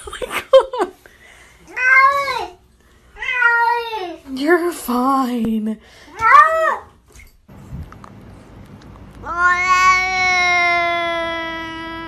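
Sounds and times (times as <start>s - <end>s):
cat long drawn-out meow: 9.2s - 12.0s.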